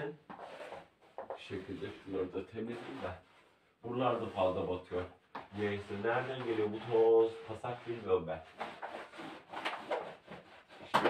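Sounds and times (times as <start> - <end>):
brushing strokes on floor: 0.3 - 10.9.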